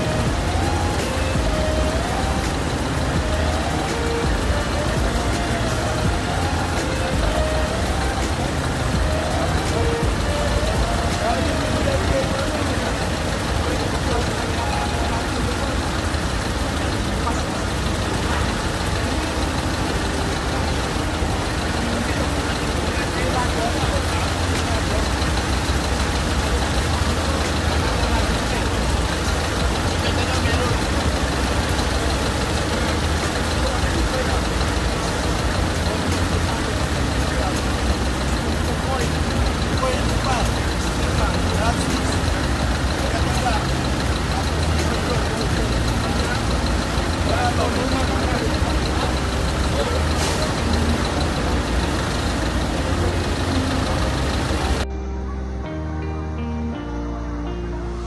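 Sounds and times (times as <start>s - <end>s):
fire engine motors rumbling: 0.0s - 58.0s.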